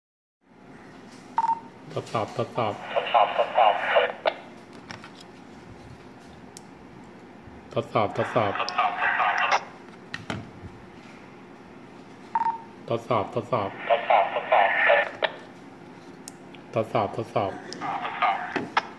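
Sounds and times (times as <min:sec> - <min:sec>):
man speaking: 0:01.9 - 0:04.2, 0:07.7 - 0:09.6, 0:12.8 - 0:14.7, 0:16.7 - 0:18.6.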